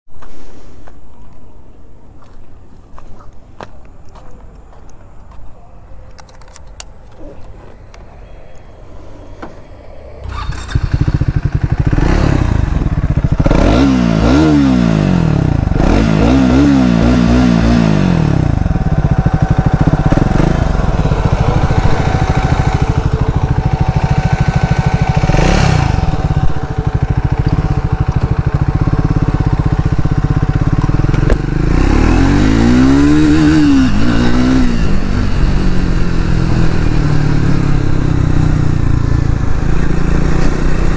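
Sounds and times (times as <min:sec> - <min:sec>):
footsteps walking: 0:02.1 - 0:05.6
low rumble: 0:07.4 - 0:14.2, 0:17.5 - 0:32.8
motorcycle engine revving and idling: 0:09.4 - 0:40.9.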